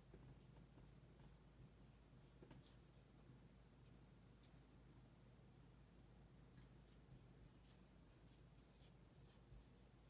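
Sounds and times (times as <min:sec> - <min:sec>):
high marker squeak: 0:02.6 - 0:02.9.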